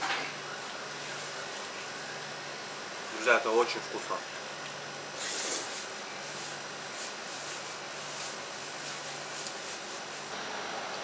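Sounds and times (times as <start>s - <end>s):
steady low hum: 0.0s - 11.0s
person slurping noodles: 5.2s - 5.9s.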